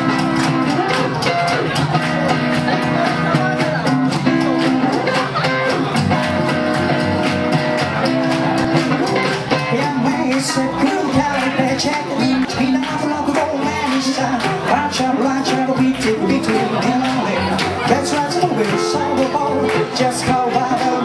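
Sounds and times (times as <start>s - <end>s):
drums: 0.0s - 21.0s
guitars: 0.0s - 21.0s
upright bass: 0.0s - 21.0s.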